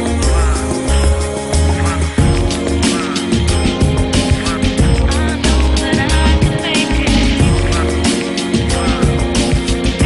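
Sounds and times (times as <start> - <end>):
pop song with drum beat: 0.0 - 10.0.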